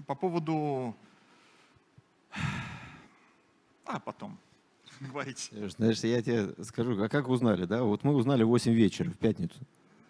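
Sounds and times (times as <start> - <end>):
man sighing: 2.3 - 3.2.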